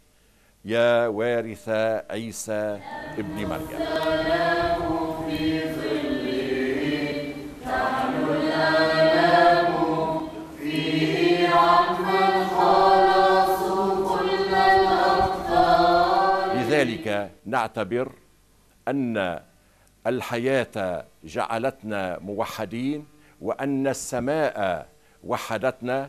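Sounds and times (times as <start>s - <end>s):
choir singing church chant: 2.6s - 17.3s.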